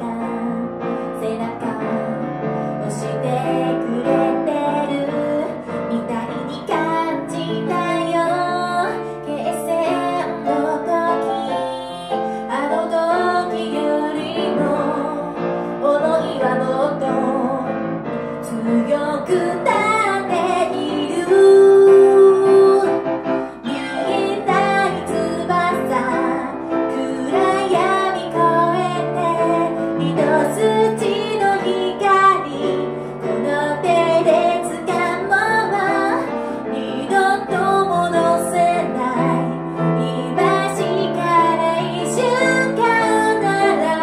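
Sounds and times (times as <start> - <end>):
grand piano: 0.0 - 44.0
woman singing a ballad: 0.0 - 44.0.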